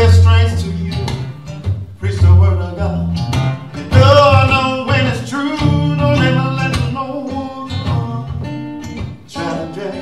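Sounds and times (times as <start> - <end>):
bass guitar notes: 0.0 - 7.1
acoustic guitar playing blues: 0.0 - 10.0.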